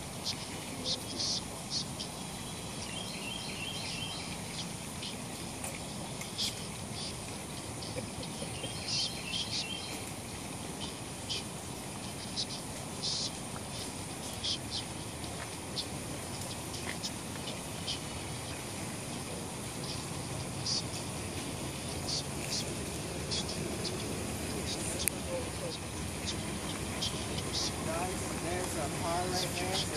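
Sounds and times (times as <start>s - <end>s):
steady high hiss: 0.0s - 29.9s
bird chirps: 23.3s - 29.9s.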